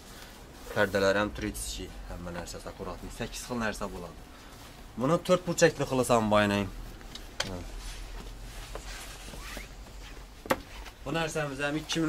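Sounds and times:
faint rustling and handling noise: 0.0 - 12.0.

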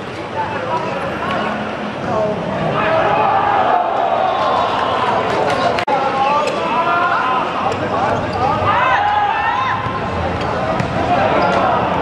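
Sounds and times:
players calling out: 0.7 - 12.0
football kicked and bouncing: 9.8 - 11.0.

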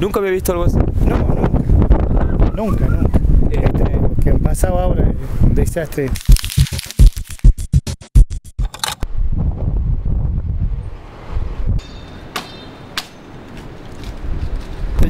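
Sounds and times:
rush of wind: 0.0 - 6.2, 9.0 - 11.9, 13.3 - 15.0
sharp percussive hits: 6.2 - 8.8.

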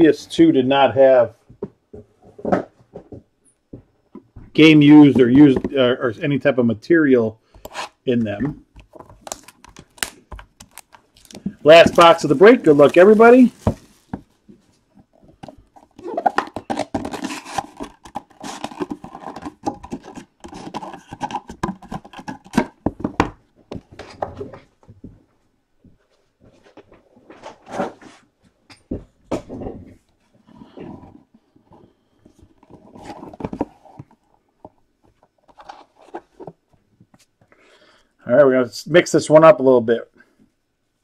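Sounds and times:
cardboard box rustling and scraping: 16.2 - 22.8, 31.8 - 34.2.

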